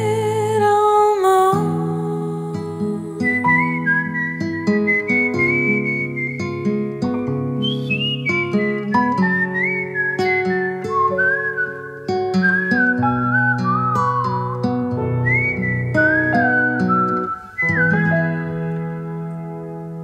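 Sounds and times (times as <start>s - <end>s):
acoustic guitar picking: 0.0s - 20.0s
whistled melody: 2.9s - 19.7s.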